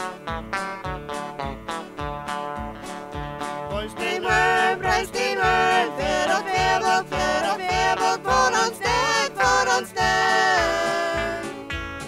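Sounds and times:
small live band playing: 0:00.0 - 0:12.0
women singing: 0:04.0 - 0:11.6.

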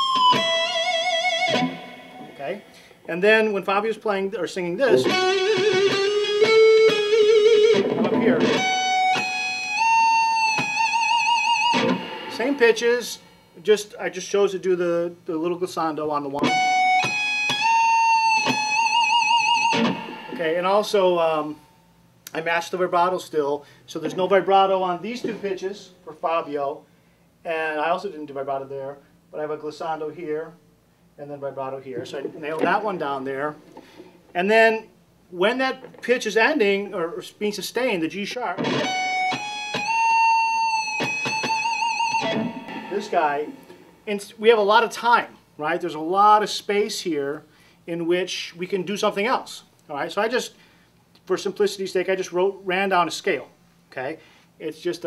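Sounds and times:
electric guitar lead line: 0:00.0 - 0:02.9, 0:04.9 - 0:12.8, 0:16.4 - 0:20.5, 0:38.5 - 0:44.1.

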